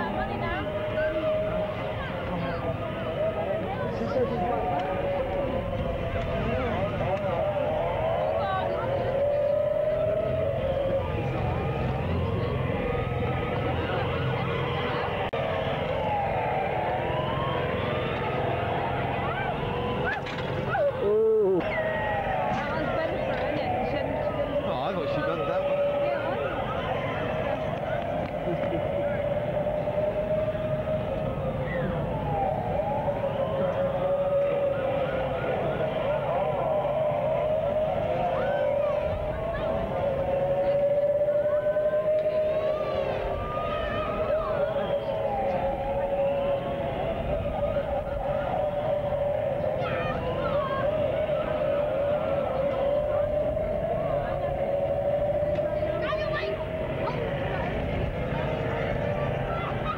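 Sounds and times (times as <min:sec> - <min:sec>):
kart motors humming: 0:00.0 - 0:59.9
voices in background: 0:00.0 - 0:59.9.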